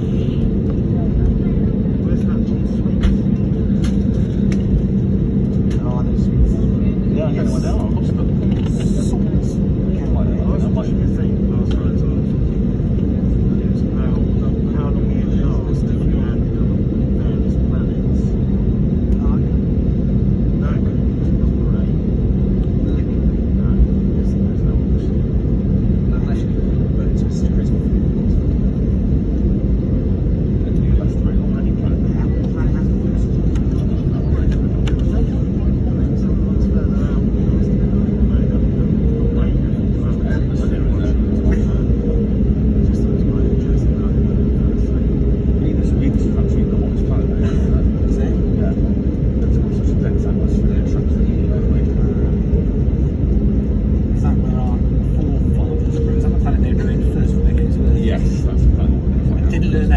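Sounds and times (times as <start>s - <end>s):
airliner engines rumbling in cabin: 0.0s - 59.9s.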